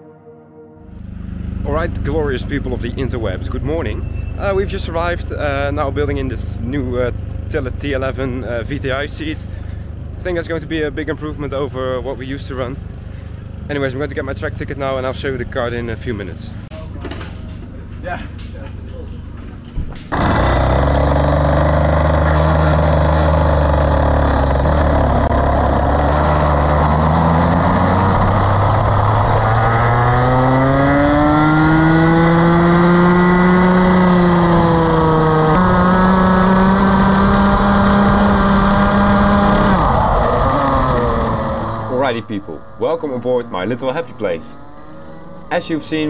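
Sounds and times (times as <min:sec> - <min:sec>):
kart engine revving: 0:20.1 - 0:44.5.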